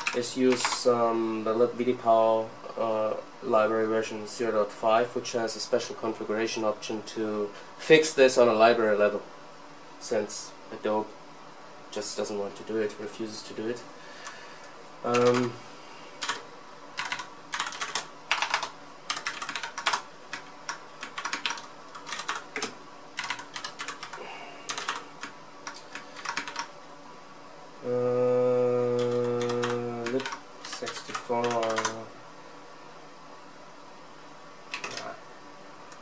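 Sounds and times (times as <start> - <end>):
typing on a computer keyboard: 0.0 - 0.8, 15.1 - 15.5, 16.2 - 16.4, 17.0 - 26.7, 29.0 - 32.0, 34.7 - 35.1
person humming: 27.8 - 30.2.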